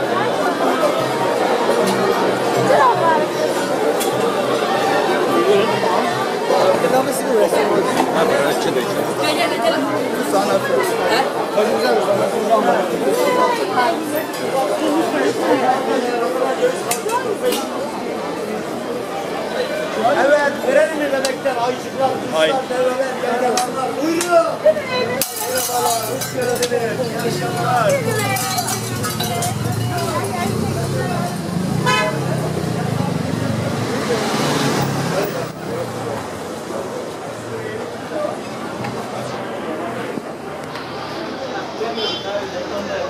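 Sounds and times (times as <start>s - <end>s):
crowd chatter: 0.0s - 43.0s
people talking: 0.0s - 43.0s.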